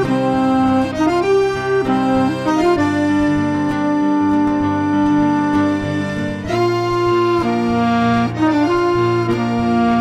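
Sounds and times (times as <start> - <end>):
accordion holding long notes: 0.0 - 10.0
keyboard accompaniment: 0.0 - 10.0
live instrumental band: 0.0 - 10.0.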